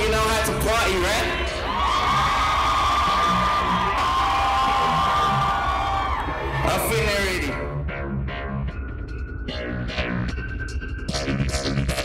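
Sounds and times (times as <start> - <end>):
crowd cheering: 0.8 - 7.4
live music with deep bass beat: 1.8 - 12.0.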